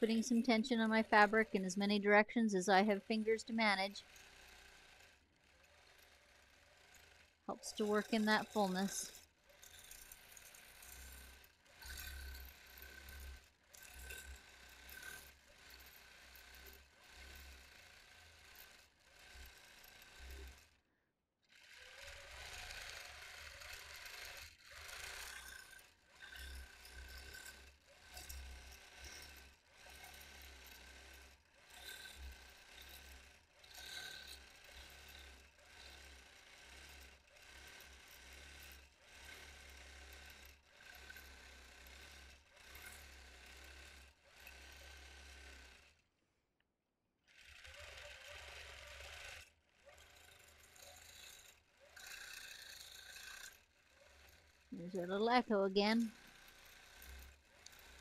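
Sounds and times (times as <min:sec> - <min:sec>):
quilting machine stitching: 0:02.6 - 0:20.8, 0:21.5 - 0:46.0, 0:47.3 - 0:58.0.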